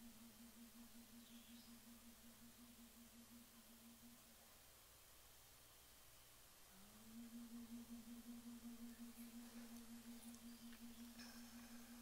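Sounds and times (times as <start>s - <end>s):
faint low wavering tone: 0.0s - 12.0s.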